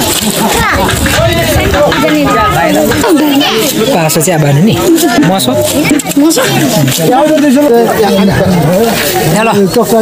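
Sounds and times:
people talking over one another: 0.0s - 10.0s.

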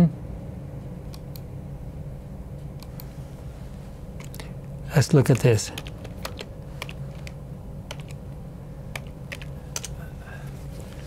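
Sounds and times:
faint steady hum: 0.0s - 11.0s
keyboard key clicks: 5.8s - 8.2s.

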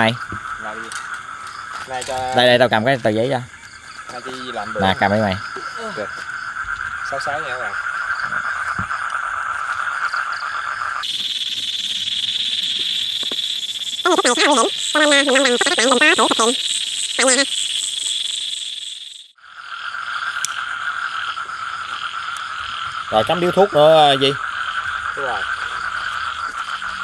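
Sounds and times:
frogs and insects trilling: 0.0s - 27.0s.

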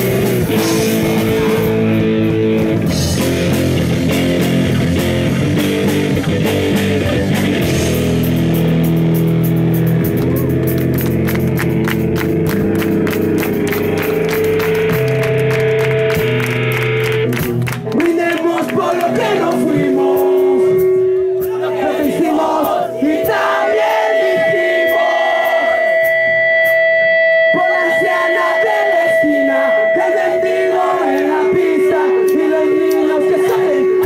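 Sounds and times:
punk rock band playing: 0.0s - 34.0s.

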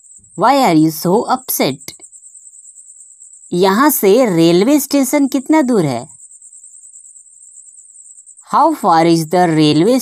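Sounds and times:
person speaking: 0.4s - 1.9s, 3.6s - 6.1s, 8.5s - 10.0s.

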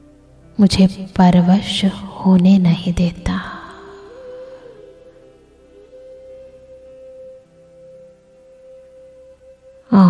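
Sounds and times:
lower sustained tone: 0.0s - 10.0s
sustained tone: 0.0s - 10.0s.

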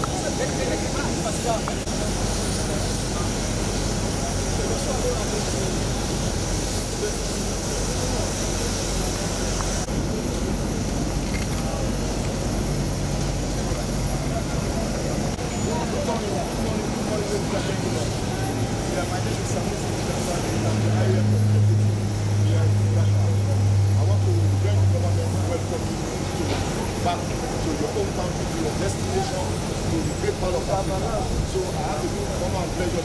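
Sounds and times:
crowd chatter: 0.0s - 33.0s
steady engine noise: 0.0s - 33.0s
low engine hum: 17.8s - 28.6s.

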